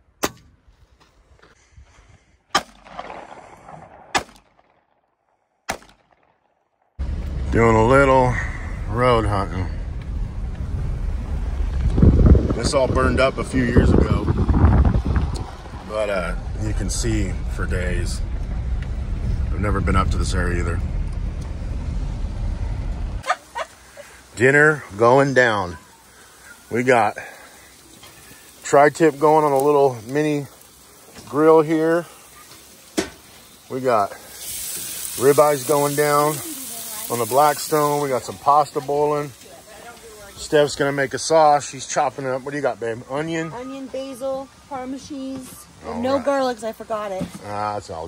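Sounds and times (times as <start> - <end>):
gunshots: 2.5 - 4.9, 5.6 - 6.4
truck engine and tyres rumbling: 7.0 - 48.0.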